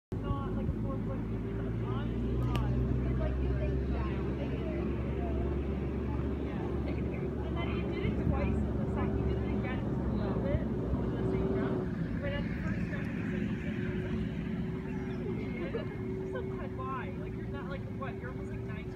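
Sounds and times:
engine running: 0:00.1 - 0:18.9
faint voices: 0:00.1 - 0:18.9.

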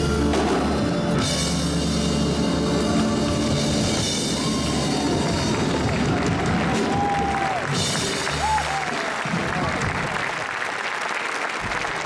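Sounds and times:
drum kit rock beat: 0:00.0 - 0:10.1
live rock band: 0:00.0 - 0:10.2.

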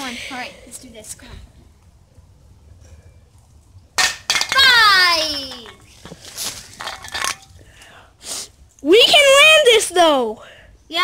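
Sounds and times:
metal spray can hitting concrete: 0:04.0 - 0:05.8.

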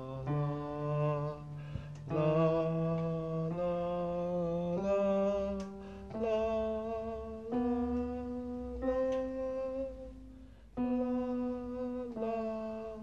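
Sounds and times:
man singing vocal scale: 0:00.0 - 0:10.2, 0:10.8 - 0:13.0
digital piano notes: 0:00.0 - 0:13.0.

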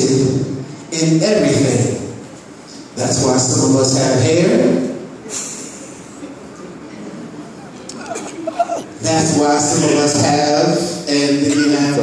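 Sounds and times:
hall room noise and hiss: 0:00.0 - 0:12.0.

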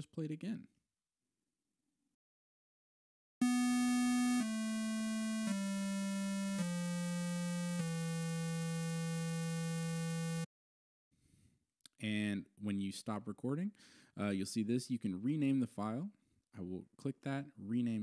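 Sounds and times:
square wave synthesizer notes: 0:03.4 - 0:10.5.

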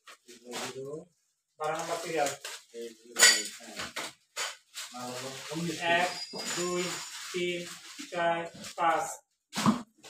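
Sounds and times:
packaged goods clinking and rattling: 0:01.6 - 0:09.0.

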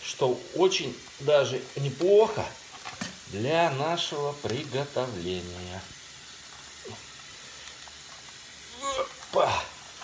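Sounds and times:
man talking: 0:00.0 - 0:02.6, 0:03.3 - 0:05.9
low background hiss: 0:00.0 - 0:10.0.

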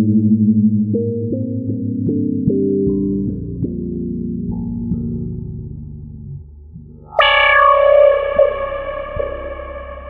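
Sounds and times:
synthesizer low held note: 0:07.0 - 0:10.0
bright synthesizer note: 0:07.1 - 0:10.0.

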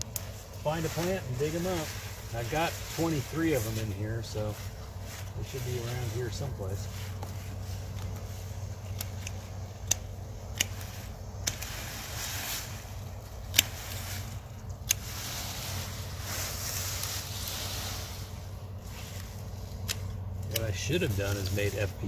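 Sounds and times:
hand pruners snipping: 0:00.0 - 0:03.9, 0:06.8 - 0:16.2, 0:18.8 - 0:22.0
steady low hum: 0:00.0 - 0:22.0
vines and leaves rustling: 0:00.0 - 0:22.0.

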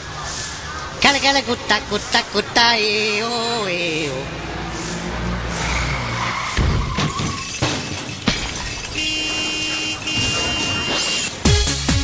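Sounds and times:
car engine: 0:00.0 - 0:11.5
tyres skidding: 0:00.0 - 0:12.0
sharp crashes: 0:04.8 - 0:11.5.

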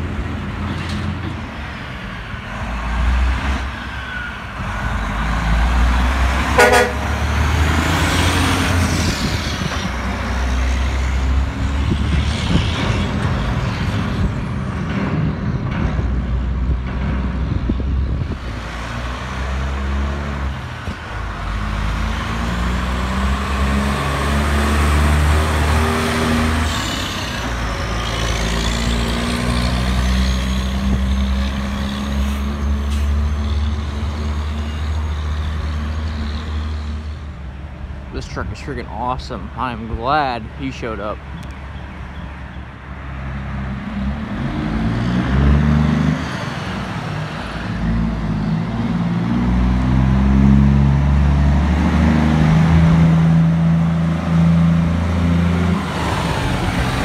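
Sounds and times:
diesel truck engines: 0:00.0 - 0:57.0
truck shifting through gears: 0:02.5 - 0:37.1
truck horn toot: 0:06.5 - 0:07.3.

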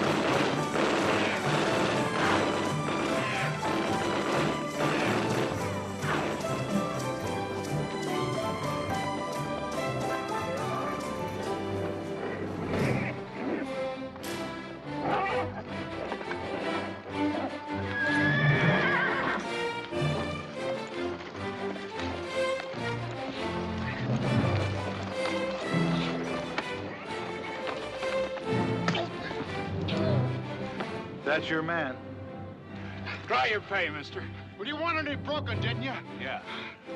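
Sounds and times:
hooves clattering: 0:00.0 - 0:14.5, 0:15.1 - 0:30.1
orchestral film music: 0:00.0 - 0:36.9
horse neighing and whinnying: 0:01.0 - 0:05.4, 0:15.0 - 0:19.6.

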